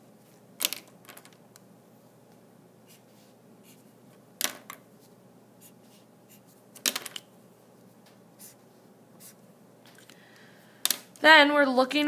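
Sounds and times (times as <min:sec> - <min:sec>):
highlighter strokes on paper: 0:02.8 - 0:04.0, 0:05.0 - 0:06.6, 0:08.4 - 0:09.4.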